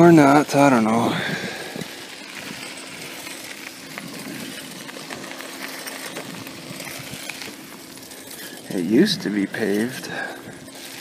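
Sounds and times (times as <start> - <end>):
bicycle tyres rolling on gravel: 0.0 - 11.0.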